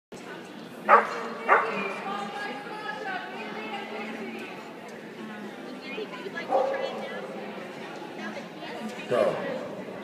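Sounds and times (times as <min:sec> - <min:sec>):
people chattering: 0:00.1 - 0:10.0
dog barking: 0:00.9 - 0:01.8, 0:06.5 - 0:06.9.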